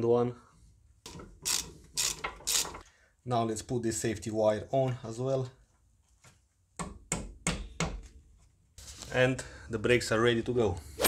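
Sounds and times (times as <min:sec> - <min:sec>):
hand ratchet clicking: 0:01.4 - 0:02.8.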